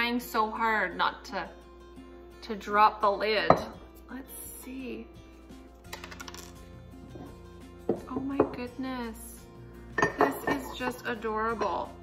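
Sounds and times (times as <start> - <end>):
faint background music: 0.0 - 12.0
ceramic knocking on ceramic: 3.5 - 3.8, 7.9 - 8.7, 10.0 - 10.8
ceramic clink: 10.0 - 11.9.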